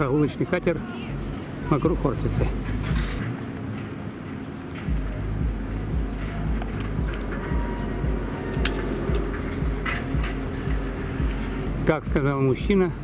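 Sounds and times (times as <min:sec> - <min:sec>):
low engine rumble: 0:00.0 - 0:13.0.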